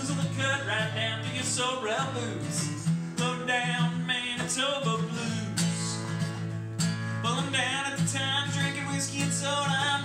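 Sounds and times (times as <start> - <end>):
person singing: 0.0 - 6.1, 7.3 - 10.0
acoustic guitar strumming: 0.0 - 10.0.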